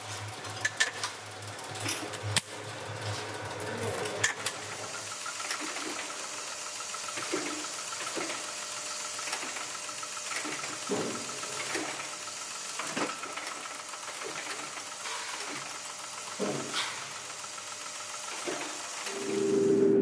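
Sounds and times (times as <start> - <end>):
riveting machine humming: 3.1 - 20.0.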